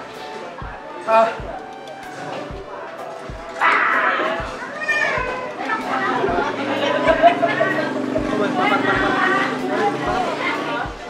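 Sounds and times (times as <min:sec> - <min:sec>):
background music with low beat: 0:00.0 - 0:11.0
voices talking: 0:00.0 - 0:11.0.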